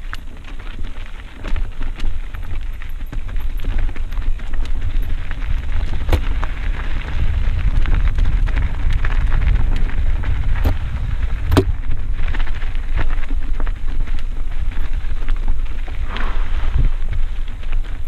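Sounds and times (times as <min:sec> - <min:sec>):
bike clicks and rattles: 0:00.0 - 0:16.0, 0:17.0 - 0:18.0
bike tyres crunching over dirt: 0:00.0 - 0:18.0
wind rumble on microphone: 0:00.0 - 0:18.0.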